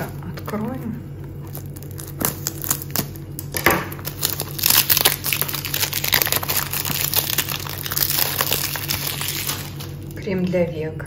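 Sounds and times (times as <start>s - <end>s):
cellophane tearing and crinkling: 0.0s - 10.2s.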